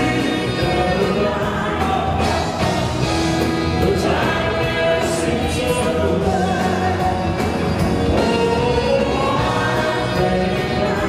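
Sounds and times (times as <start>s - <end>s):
man singing into a microphone: 0.0s - 2.7s, 3.7s - 11.0s
live band playing: 0.0s - 11.0s.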